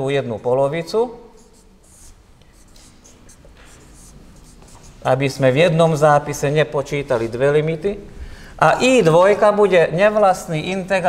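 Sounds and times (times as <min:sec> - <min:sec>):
marker scratching on whiteboard: 0:01.3 - 0:05.4.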